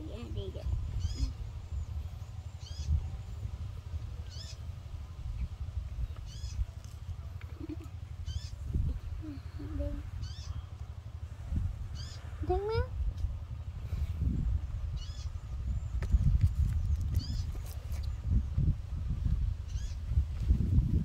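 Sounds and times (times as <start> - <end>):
low rumble: 0.0 - 21.0.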